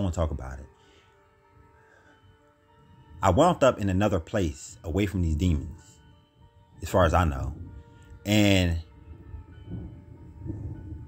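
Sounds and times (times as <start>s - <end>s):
low steady drone: 0.0s - 11.0s.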